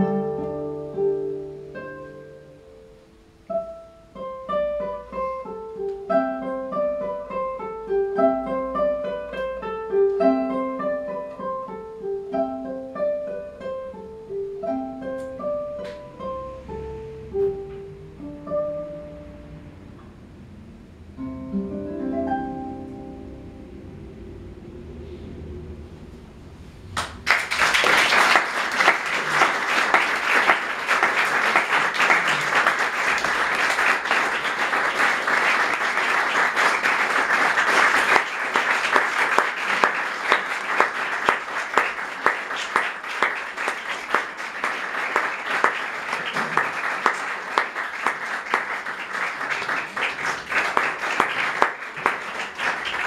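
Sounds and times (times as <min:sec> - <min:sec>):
audience applauding: 0:27.0 - 0:53.0.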